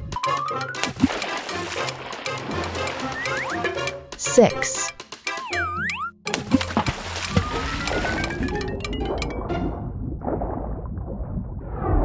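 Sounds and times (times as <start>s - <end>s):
cheerful children's music: 0.0s - 6.2s.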